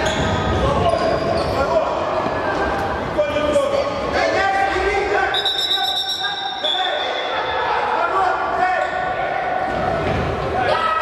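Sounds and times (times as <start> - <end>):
players and coaches shouting: 3.4 - 11.0.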